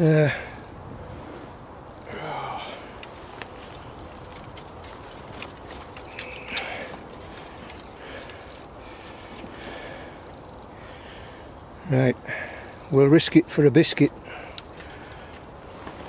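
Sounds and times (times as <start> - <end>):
grass rustling: 0.0 - 11.3, 14.3 - 16.0
footsteps on wet boggy ground: 2.8 - 10.2.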